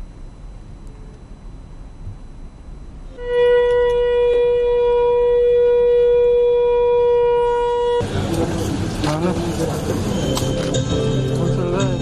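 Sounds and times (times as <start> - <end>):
conch shell blown: 3.1 - 12.0
hall noise: 3.1 - 12.0.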